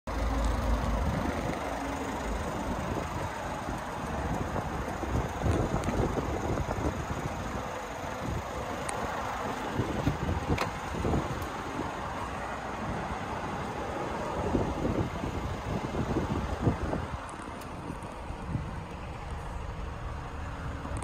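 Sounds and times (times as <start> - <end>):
steady low rumble: 0.1 - 21.0
wind buffeting microphone: 0.8 - 12.2, 14.3 - 19.6.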